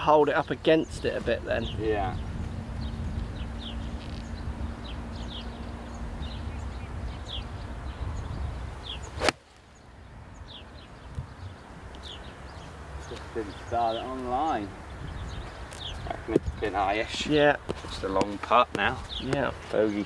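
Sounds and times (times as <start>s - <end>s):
wind rumbling on microphone: 0.0s - 19.9s
small birds chirping: 0.0s - 20.0s
golf club striking ball: 9.2s - 9.5s.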